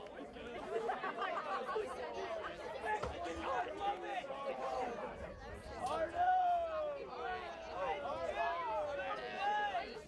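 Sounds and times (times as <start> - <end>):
murmur of chatter: 0.0 - 10.0.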